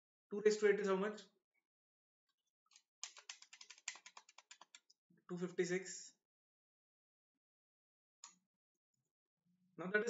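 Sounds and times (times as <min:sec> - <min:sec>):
keys tapping: 0:03.0 - 0:04.8.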